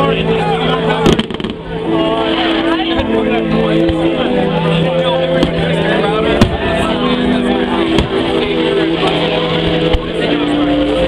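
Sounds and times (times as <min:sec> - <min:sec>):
crowd chatter: 0:00.0 - 0:11.0
music with sustained chords: 0:00.0 - 0:11.0
fireworks banging: 0:01.0 - 0:01.8, 0:05.4 - 0:06.8, 0:07.9 - 0:10.2.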